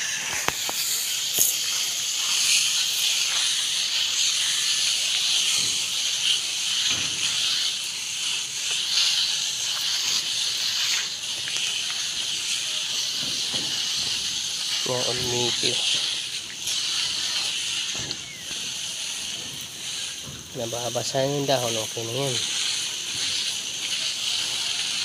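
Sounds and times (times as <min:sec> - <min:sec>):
high-pitched hiss: 0:00.0 - 0:25.0.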